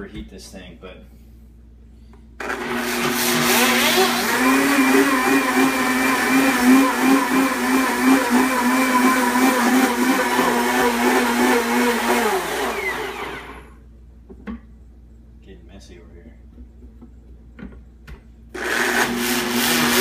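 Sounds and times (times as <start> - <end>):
blender motor whine: 2.4 - 13.8, 18.6 - 20.0.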